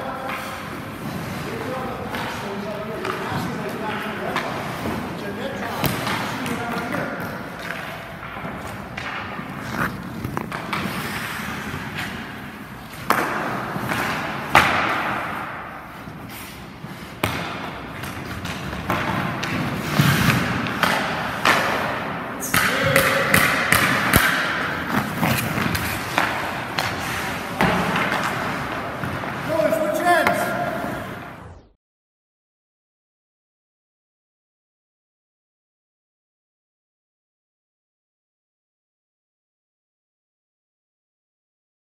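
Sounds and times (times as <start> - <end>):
sticks striking pucks: 0.0 - 31.2
pucks hitting pads and boards: 0.0 - 31.4
skates scraping ice: 0.0 - 31.4.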